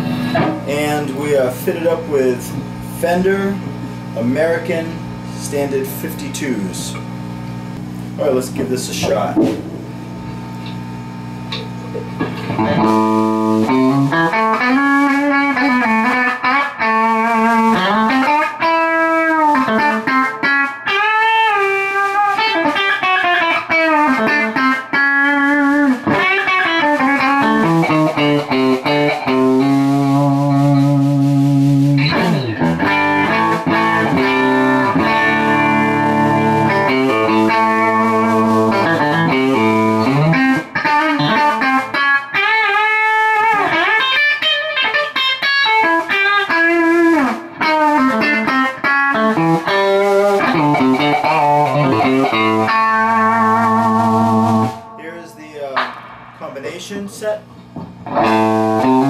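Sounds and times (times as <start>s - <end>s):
electric guitar licks and chords: 0.0s - 56.6s, 57.4s - 59.0s.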